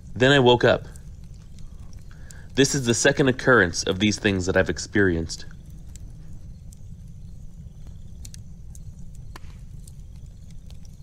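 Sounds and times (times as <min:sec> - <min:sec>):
fire crackles: 0:00.0 - 0:11.0
wood fire rumbling: 0:00.0 - 0:11.0.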